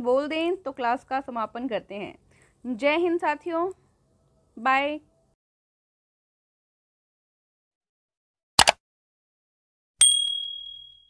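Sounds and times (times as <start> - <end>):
high bright bell ding: 10.0 - 11.0.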